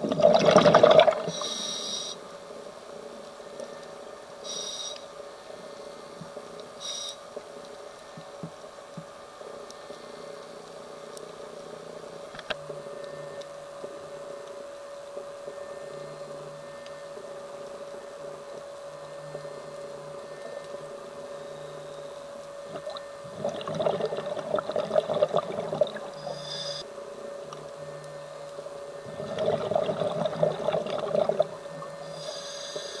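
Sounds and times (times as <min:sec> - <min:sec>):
underwater exhaled bubbles: 0:00.0 - 0:01.4, 0:22.7 - 0:26.4, 0:29.0 - 0:32.1
steady hum: 0:00.0 - 0:33.0.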